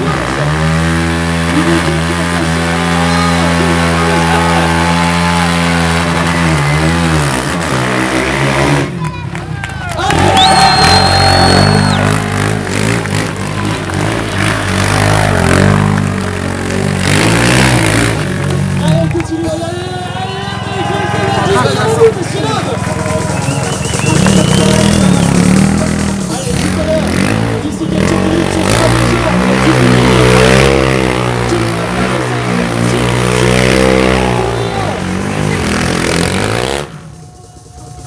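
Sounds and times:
quad bike engine revving: 0.0 - 38.0
announcer speaking: 18.8 - 35.5.

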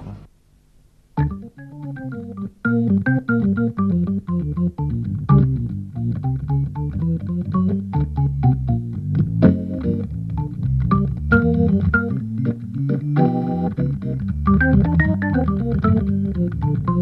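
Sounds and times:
jazz organ playing: 1.2 - 17.0.

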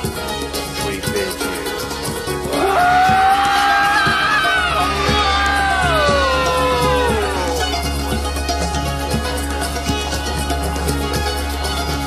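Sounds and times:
steady beat: 0.0 - 11.8
plucked string notes: 0.0 - 12.0.

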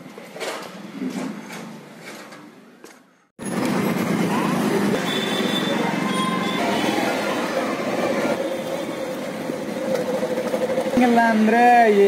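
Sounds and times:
road noise: 0.0 - 12.0
motorcycle engine running: 3.4 - 5.5, 8.4 - 12.0.

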